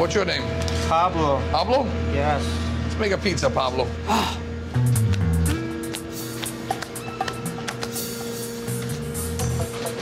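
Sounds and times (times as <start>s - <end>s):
low bass line: 4.5s - 5.9s.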